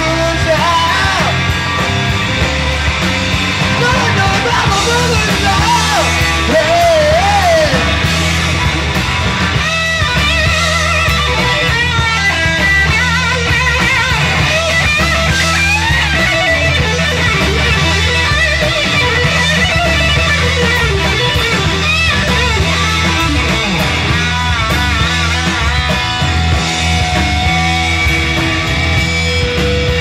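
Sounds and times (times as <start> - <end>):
bass guitar: 0.0 - 30.0
drum kit: 0.0 - 30.0
electric guitar lead with bent notes: 0.0 - 30.0.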